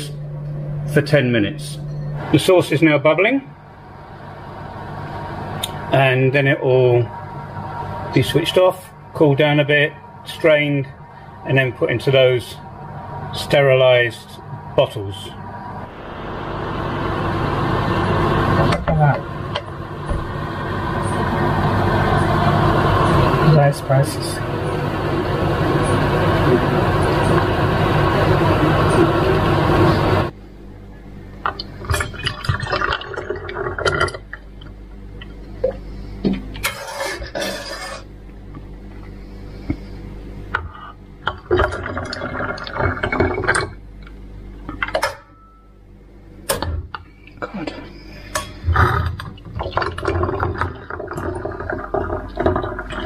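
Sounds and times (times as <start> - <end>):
loud dense steady sound: 0.0 - 30.7.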